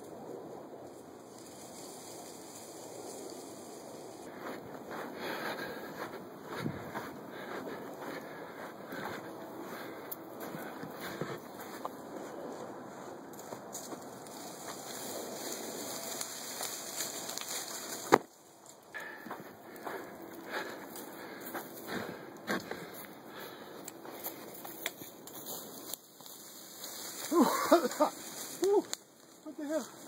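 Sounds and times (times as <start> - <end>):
dry grass rustling and crackling: 0.0 - 30.0.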